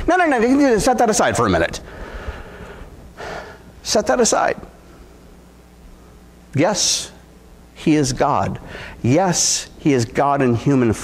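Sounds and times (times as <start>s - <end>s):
man speaking: 0.0s - 1.9s, 3.8s - 4.8s, 6.5s - 11.0s
faint low room hum: 0.0s - 11.0s
man's sharp in-breath: 1.9s - 3.7s, 8.6s - 9.0s.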